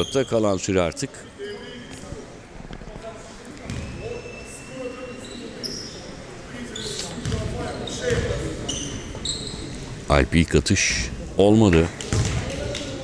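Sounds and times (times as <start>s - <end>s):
voices in echoing hall: 0.0s - 13.0s
basketball bouncing on hardwood: 7.2s - 7.5s, 12.1s - 12.4s.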